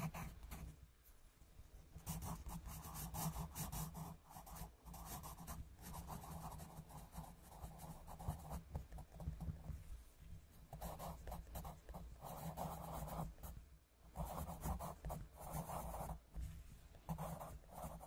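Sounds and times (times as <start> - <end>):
pencil scratching on paper: 0.0 - 0.7, 2.0 - 9.4, 10.7 - 13.5, 14.1 - 16.2, 17.1 - 18.0.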